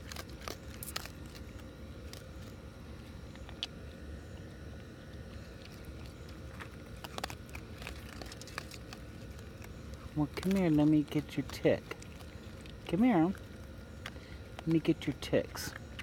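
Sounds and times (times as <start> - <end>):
animal crunching dry kibble: 0.0 - 16.0.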